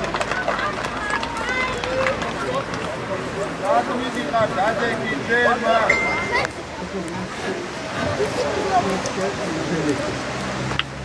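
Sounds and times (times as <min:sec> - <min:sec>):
handclaps: 0:00.0 - 0:03.0
children talking and calling out: 0:00.0 - 0:09.9.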